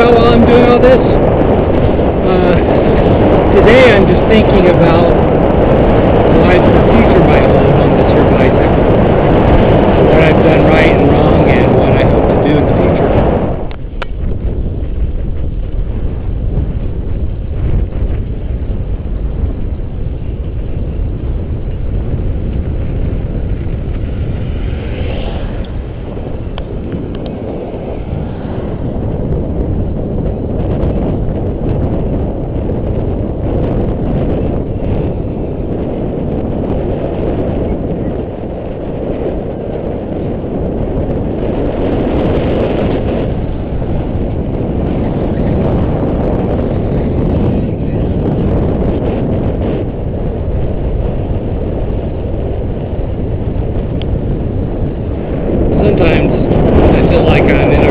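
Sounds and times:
wind buffeting microphone: 0.0s - 57.9s.

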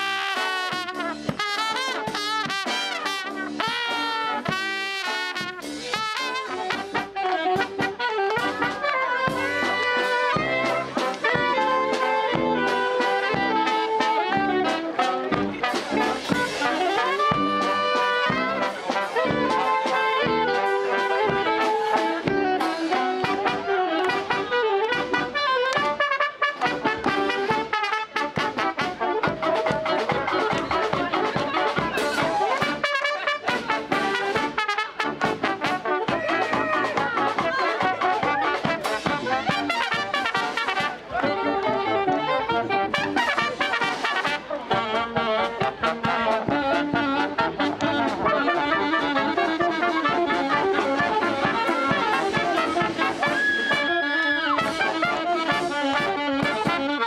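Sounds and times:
bass drum beat: 0.0s - 53.4s
saxophones: 0.0s - 57.0s
trombones: 0.0s - 57.0s
trumpets: 0.0s - 57.0s.

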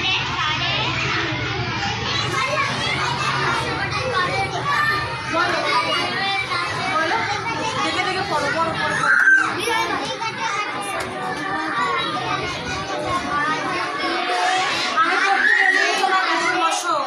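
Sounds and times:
young children chattering: 0.0s - 17.0s.

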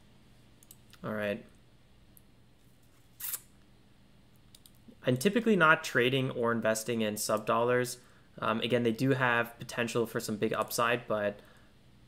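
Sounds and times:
computer mouse click: 4.5s - 4.8s.

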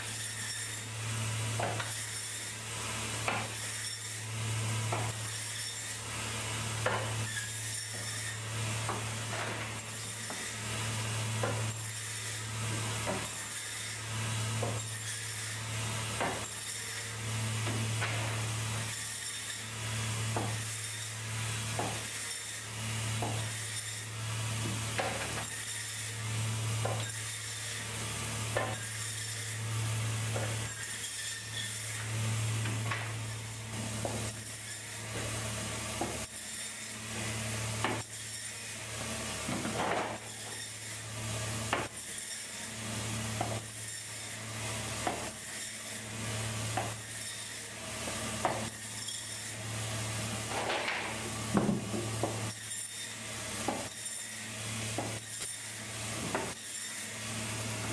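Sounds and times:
band saw motor hum: 0.0s - 57.9s.

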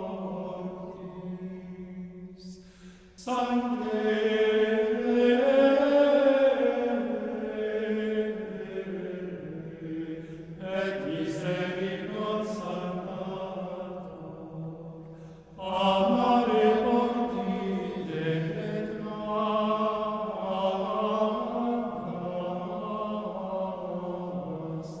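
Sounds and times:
chant in long held notes: 0.0s - 2.6s, 3.2s - 25.0s.

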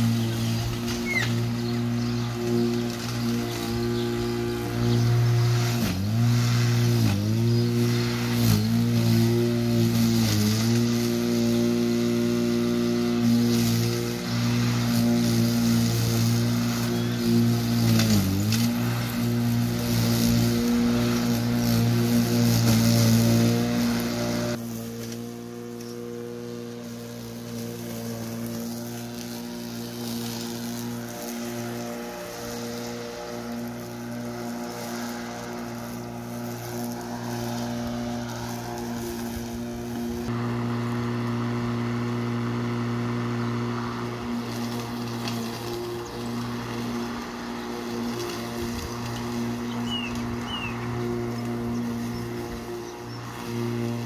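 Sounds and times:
electric lawn mower running: 0.0s - 54.0s.

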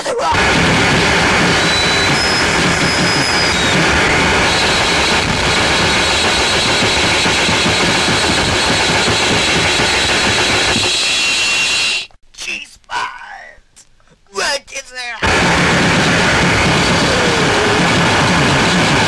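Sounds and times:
high whistling tones: 1.4s - 7.1s, 10.0s - 12.1s.

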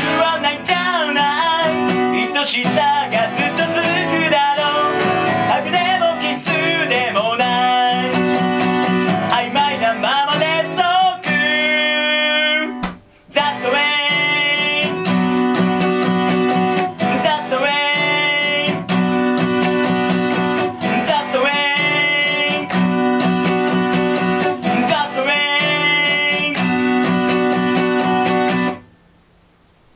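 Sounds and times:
man singing: 0.0s - 19.3s, 20.3s - 27.2s
acoustic guitar strumming chords: 0.0s - 29.2s.

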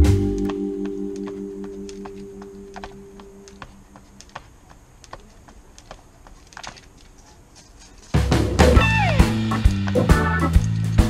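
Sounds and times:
background music: 0.0s - 3.6s, 8.3s - 11.0s
jump rope ticking on concrete: 0.3s - 8.2s.

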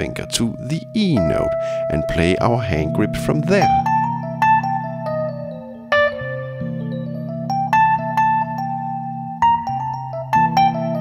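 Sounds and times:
piano blues phrase: 0.0s - 11.0s.

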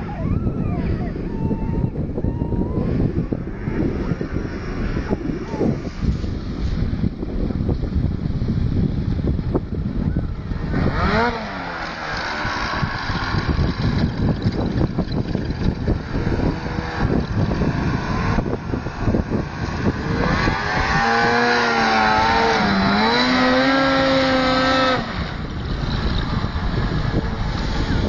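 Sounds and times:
rough gusty noise: 0.6s - 28.0s
snowmobile engine revving: 2.6s - 7.5s, 10.4s - 28.0s.

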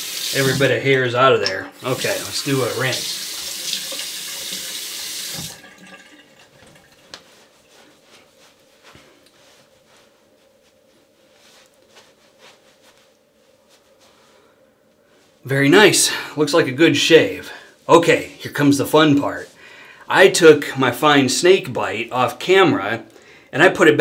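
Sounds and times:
sink tap running: 0.0s - 7.1s.

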